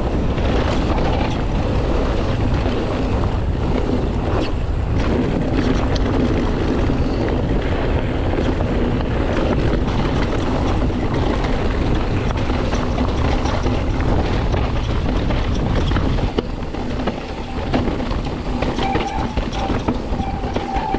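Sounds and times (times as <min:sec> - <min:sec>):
bike clicks and rattles: 0:00.0 - 0:20.9
tyres rolling on dirt and stones: 0:00.0 - 0:20.9
wind rushing on microphone: 0:00.0 - 0:20.9.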